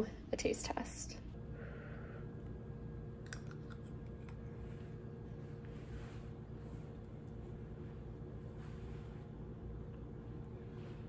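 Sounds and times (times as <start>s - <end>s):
low steady hum: 0.0s - 11.0s
chewing mouth sounds: 3.2s - 4.4s.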